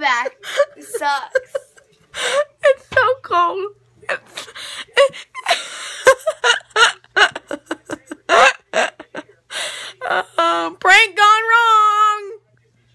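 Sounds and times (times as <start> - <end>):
girl laughing: 0.1 - 3.0, 4.2 - 9.2
gasping breaths: 9.5 - 10.0.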